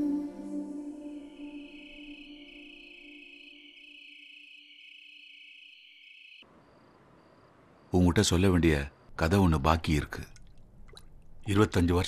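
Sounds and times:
crickets trilling: 1.1 - 10.4.

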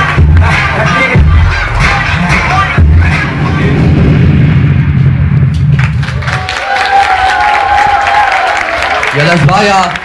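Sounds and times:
dance music with heavy bass: 0.0 - 5.4
audience clapping and cheering: 5.5 - 10.0
long held cheer: 6.0 - 10.0.

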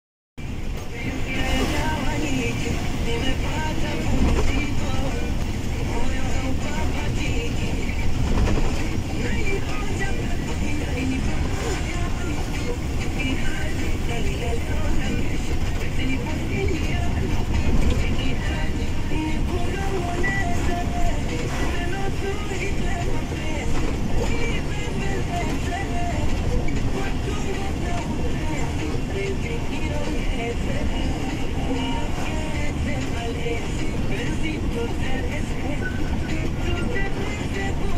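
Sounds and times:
truck engine and tyre noise: 0.4 - 37.9.

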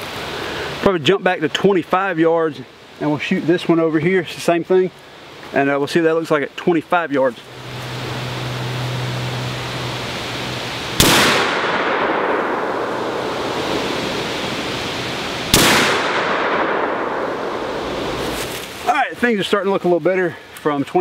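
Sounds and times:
wind in trees: 0.0 - 21.0
rifle shots echoing: 11.0 - 14.4, 15.4 - 18.4.

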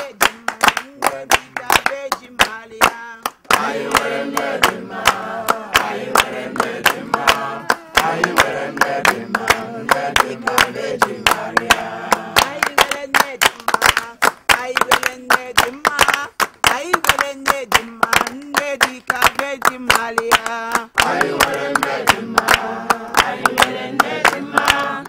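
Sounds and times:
group singing a church song: 0.0 - 14.2, 18.7 - 25.0
hands clapping in rhythm: 0.0 - 25.0.

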